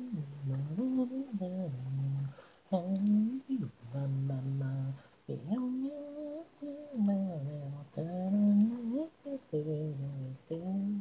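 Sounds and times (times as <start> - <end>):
solo voice singing a cappella: 0.0 - 11.0.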